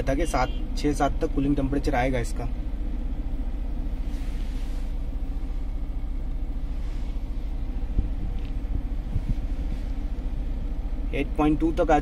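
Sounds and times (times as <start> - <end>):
air conditioning blower airflow: 0.0 - 12.0
car engine idling: 0.0 - 12.0.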